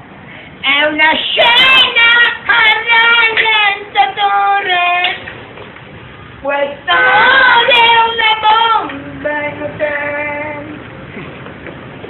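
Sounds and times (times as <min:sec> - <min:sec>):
woman singing unaccompanied: 0:00.6 - 0:05.3, 0:06.4 - 0:10.8.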